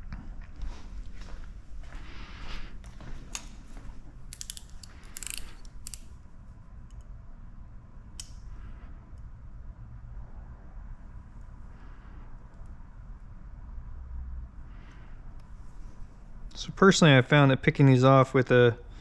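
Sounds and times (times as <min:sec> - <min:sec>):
handling clicks and scrapes: 0:04.3 - 0:06.1.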